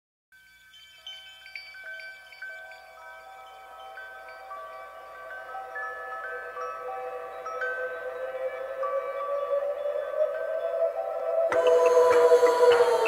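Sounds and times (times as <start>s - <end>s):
soft ringing chimes: 0.4s - 13.0s.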